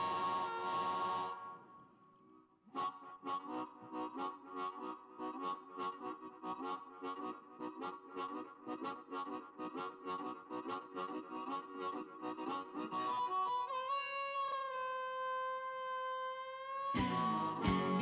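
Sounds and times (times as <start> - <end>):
blues harmonica playing: 0.0 - 1.8, 2.7 - 18.0.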